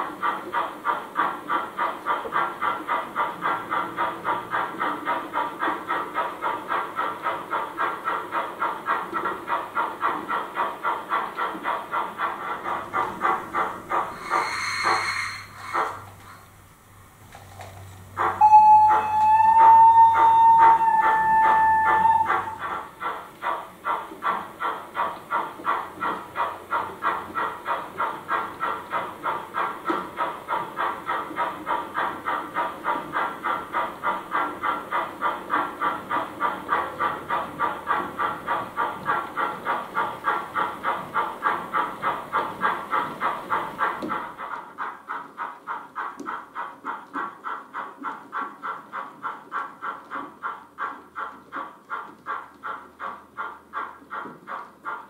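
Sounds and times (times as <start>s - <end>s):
steam exhaust chuffs: 0.0s - 55.0s
model train whistle: 18.3s - 22.6s.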